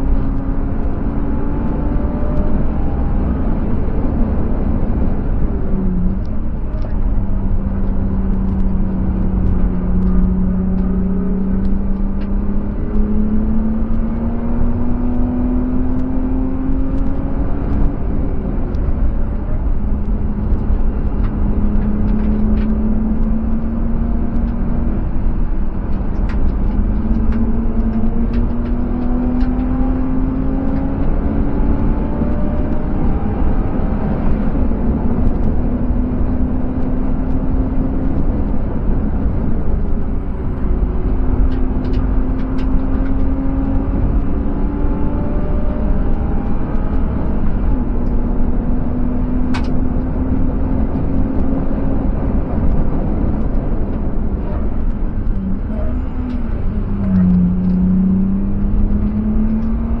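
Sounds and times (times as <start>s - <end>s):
car engine accelerating: 0.0s - 60.0s
wind and tyre noise: 0.0s - 60.0s.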